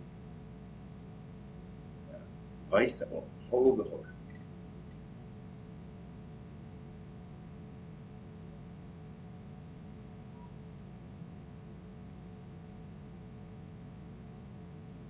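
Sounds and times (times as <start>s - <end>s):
low hum and hiss: 0.0s - 15.0s
thin constant tone: 0.0s - 15.0s.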